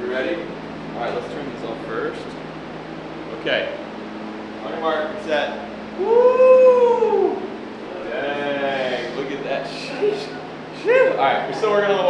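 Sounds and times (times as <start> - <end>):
long rising and falling vocal call: 6.0 - 8.6.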